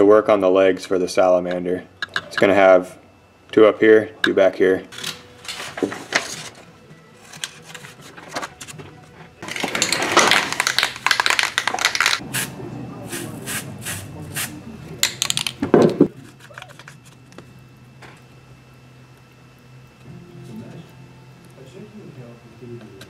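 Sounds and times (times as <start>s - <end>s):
plastic bottle shaking: 9.4s - 12.2s.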